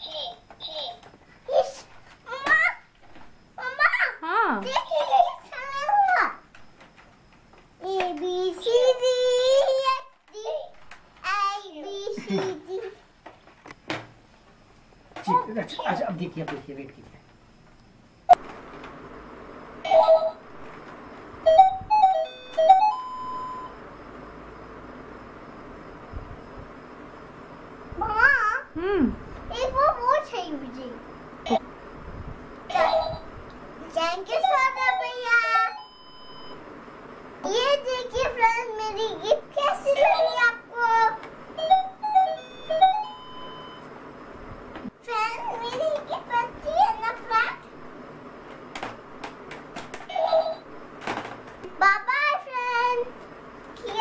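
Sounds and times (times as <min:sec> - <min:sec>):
toy laptop electronic beeps: 0:21.5 - 0:23.7, 0:35.7 - 0:36.6, 0:41.6 - 0:43.9.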